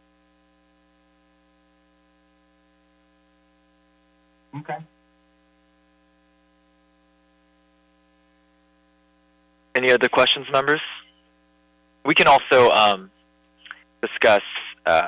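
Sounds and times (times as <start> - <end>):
faint mains hum: 0.0 - 15.0.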